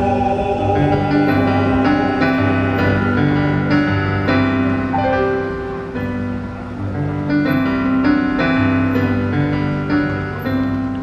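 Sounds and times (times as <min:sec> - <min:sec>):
mixed choir singing in harmony: 0:00.0 - 0:05.4.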